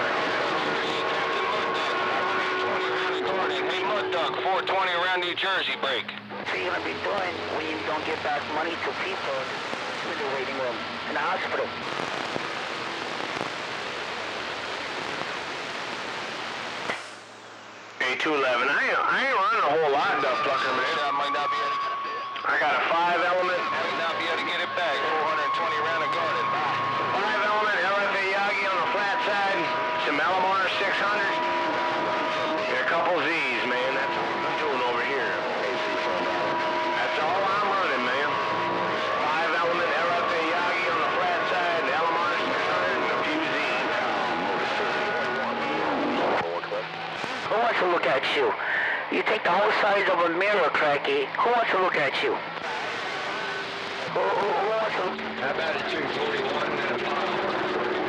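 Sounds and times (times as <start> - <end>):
radio static hiss: 0.0 - 58.0.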